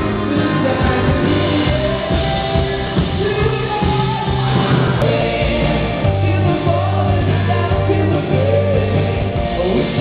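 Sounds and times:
live rock band with singing: 0.0s - 10.0s.

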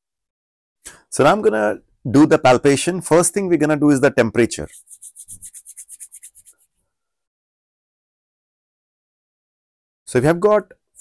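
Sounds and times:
palms rubbing together: 4.5s - 6.8s.

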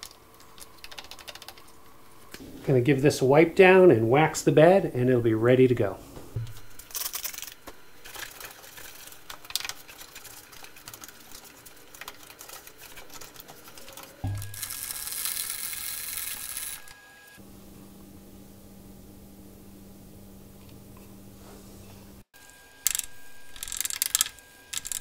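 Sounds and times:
steady low hum: 0.0s - 25.0s
thump: 14.3s - 14.6s.

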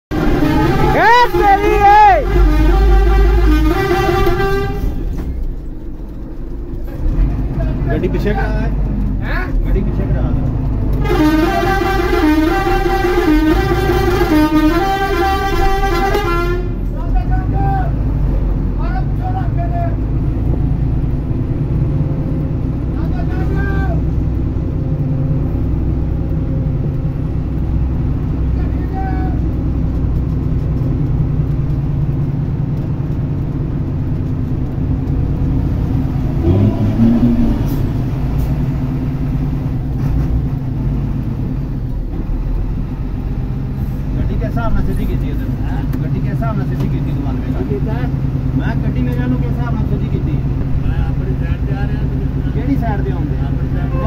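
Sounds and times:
music playing: 0.1s - 5.0s
horn toots: 0.1s - 5.4s, 10.9s - 16.9s, 35.9s - 38.8s
diesel bus engine running: 0.1s - 54.0s.

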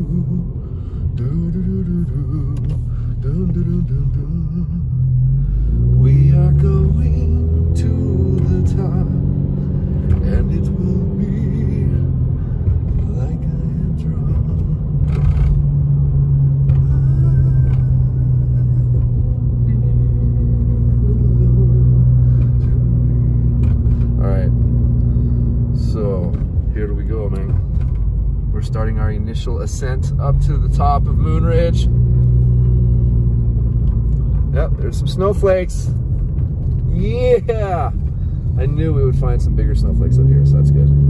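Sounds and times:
car engine drone: 0.0s - 41.0s
road noise inside car: 0.0s - 41.0s.

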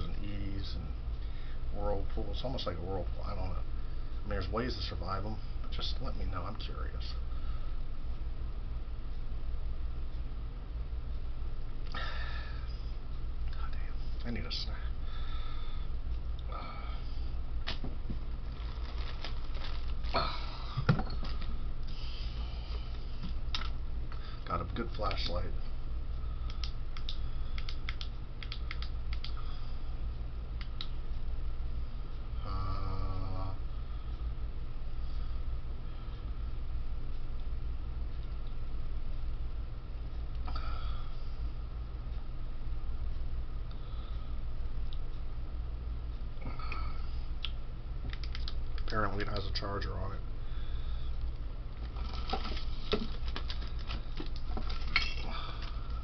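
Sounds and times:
steady low hum: 0.0s - 56.0s
objects being handled: 17.7s - 20.2s, 51.8s - 56.0s.

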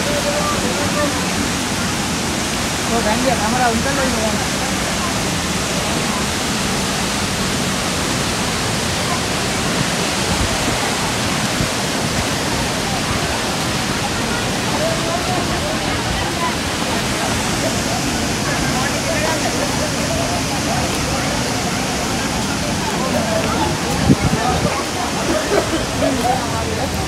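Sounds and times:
faint crowd voices: 0.0s - 27.0s
waterfall rushing: 0.0s - 27.0s.

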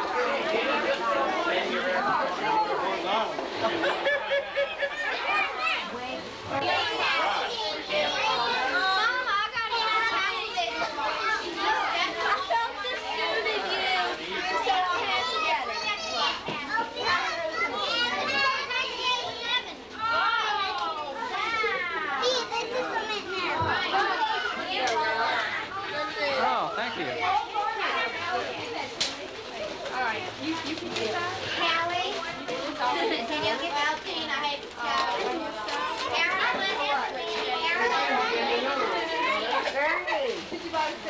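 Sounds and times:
children talking and calling out: 0.0s - 41.0s.

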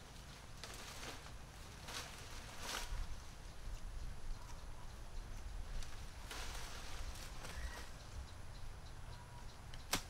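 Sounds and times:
bamboo pole clacking on ground: 9.7s - 10.0s.

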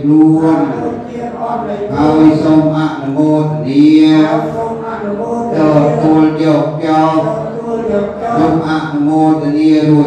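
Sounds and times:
slow ceremonial chanting: 0.0s - 10.0s.

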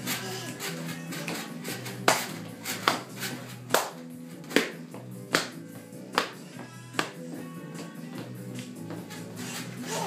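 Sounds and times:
baby jumper tapping floor: 0.0s - 5.6s
music: 0.0s - 10.0s.

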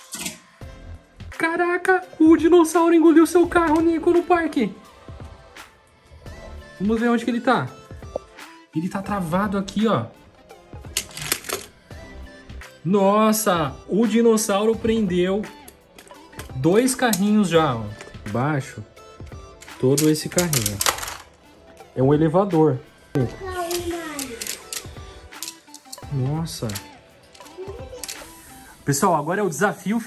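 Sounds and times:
plastic toy cars clicking and rattling: 11.0s - 11.7s, 19.6s - 21.4s, 23.6s - 28.4s.

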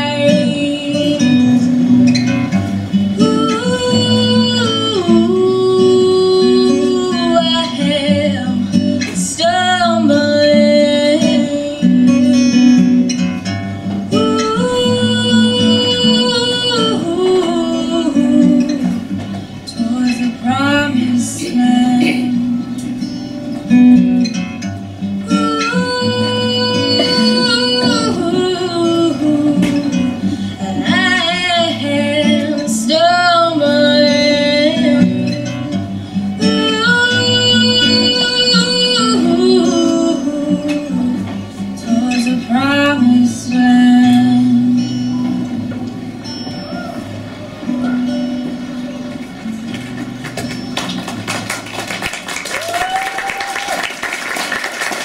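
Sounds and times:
woman singing slowly: 0.0s - 1.7s, 3.2s - 12.9s, 14.1s - 19.1s, 19.7s - 23.0s, 25.2s - 45.3s
acoustic guitar: 0.0s - 55.0s.

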